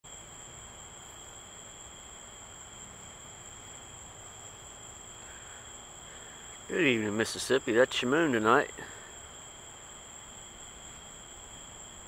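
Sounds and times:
faint background hiss: 0.0 - 12.0
insect chorus trilling: 0.0 - 12.0.

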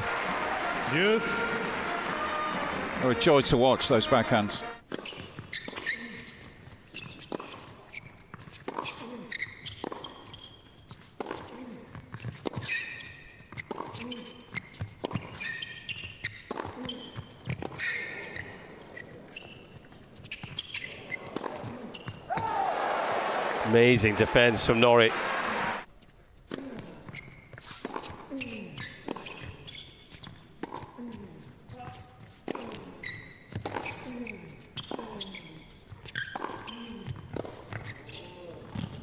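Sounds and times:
shoe squeaks: 4.9 - 22.3, 27.1 - 30.4, 31.7 - 39.0.

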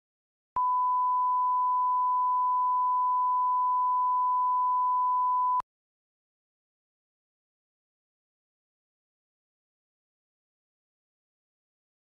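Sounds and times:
steady reference tone beep: 0.6 - 5.6.

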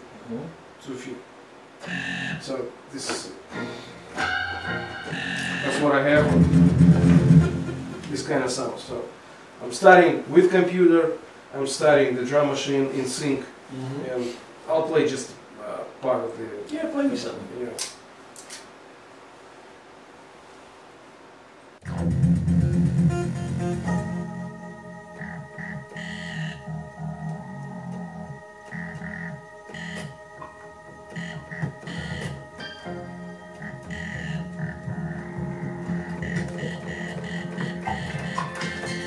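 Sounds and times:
electronic organ music: 1.8 - 2.5, 3.5 - 8.3, 21.8 - 39.0
drum machine bass and drums: 5.1 - 8.2, 21.8 - 24.2, 30.9 - 32.6, 33.7 - 39.0.

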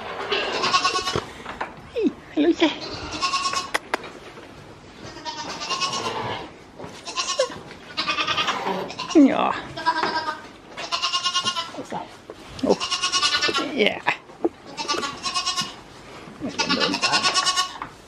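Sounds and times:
goats bleating: 0.3 - 1.3, 2.8 - 3.9, 5.0 - 11.8, 12.6 - 13.8, 14.6 - 17.9.

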